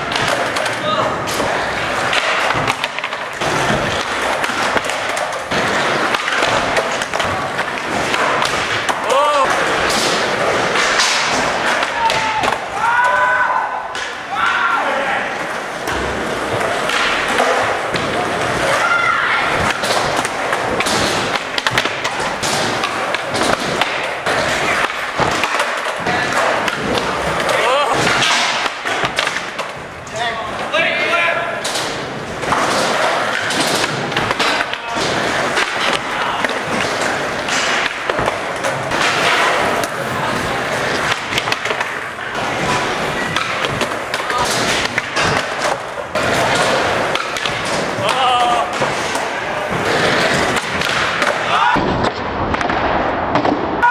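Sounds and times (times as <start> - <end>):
skateboards popping and landing: 0.0 - 14.3, 15.4 - 53.9
skateboards rolling on concrete: 0.0 - 53.1.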